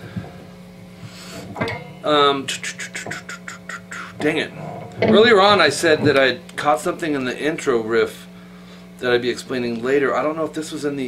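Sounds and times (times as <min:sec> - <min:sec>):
guitar amplifier hum and hiss: 0:00.0 - 0:11.0.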